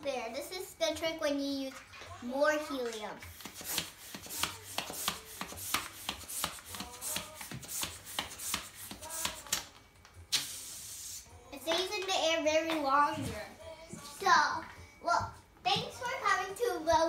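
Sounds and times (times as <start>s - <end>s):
hand balloon pump strokes: 3.2s - 9.7s
air hiss: 10.3s - 11.4s.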